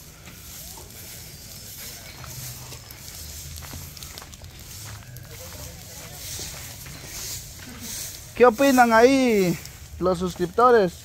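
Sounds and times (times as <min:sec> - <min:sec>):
bonfire crackling and hissing: 0:00.0 - 0:11.0.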